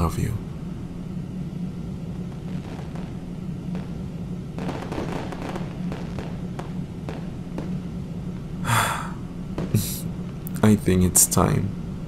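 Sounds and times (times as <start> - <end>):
low background rumble: 0.0 - 12.0
faint crackles and clicks: 2.1 - 8.6.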